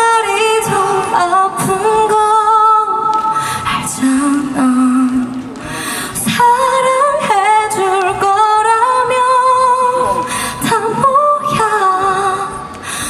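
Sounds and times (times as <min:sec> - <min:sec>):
woman singing with vibrato: 0:00.0 - 0:13.0.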